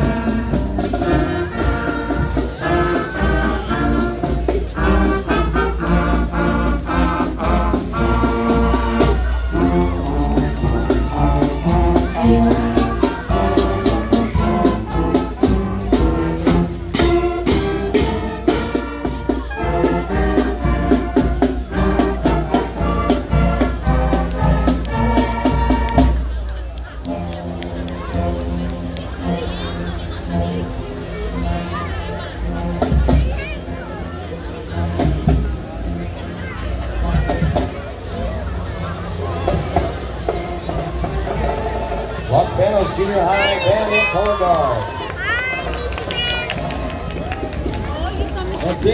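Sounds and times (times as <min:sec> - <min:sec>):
crowd voices: 0:00.0 - 0:48.9
marching band playing: 0:00.0 - 0:48.9.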